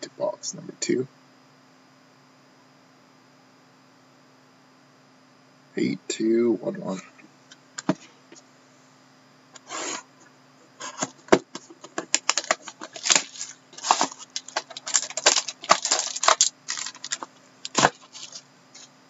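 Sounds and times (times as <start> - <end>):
plastic shrink wrap tearing and crinkling: 12.1 - 18.4
cardboard box handled: 12.4 - 18.4.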